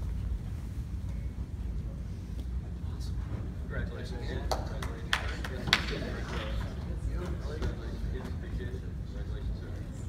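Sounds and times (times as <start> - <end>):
low rumble of room noise: 0.0 - 10.0.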